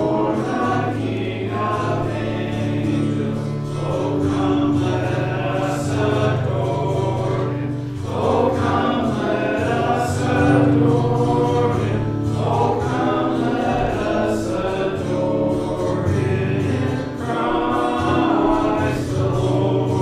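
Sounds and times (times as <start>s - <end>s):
congregation singing a hymn: 0.0s - 20.0s
held low notes: 0.0s - 20.0s.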